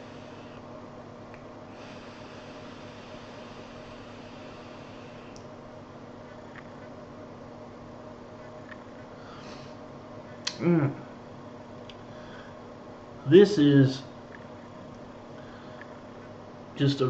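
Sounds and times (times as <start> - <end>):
low room hum: 0.0 - 17.0
e-cigarette draw hiss: 1.7 - 5.4.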